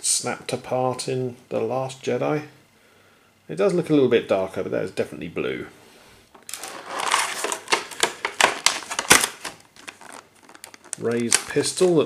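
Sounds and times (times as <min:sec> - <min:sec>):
plastic packaging crinkling: 0:06.3 - 0:12.0.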